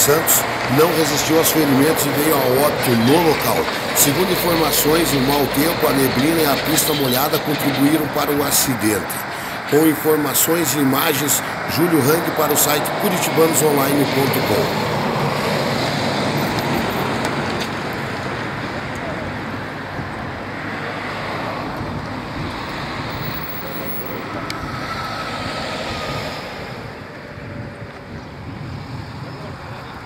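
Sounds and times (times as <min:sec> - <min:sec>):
traffic on wet highway: 0:00.0 - 0:30.0
wind on microphone: 0:24.2 - 0:30.0.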